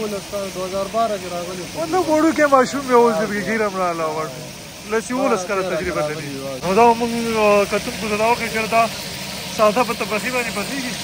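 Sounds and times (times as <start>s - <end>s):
fish deep-frying in oil: 0.0s - 11.0s
man speaking: 0.0s - 11.0s.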